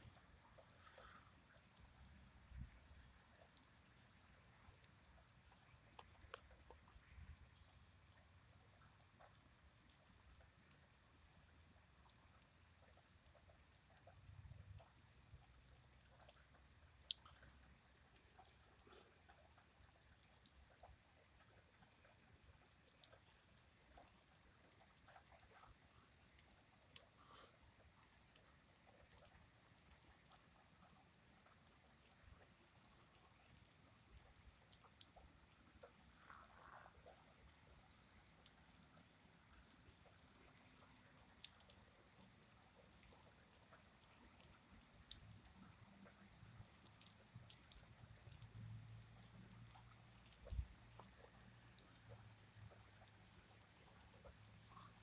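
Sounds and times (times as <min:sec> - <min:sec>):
light raindrop ticks: 0:00.0 - 0:55.0.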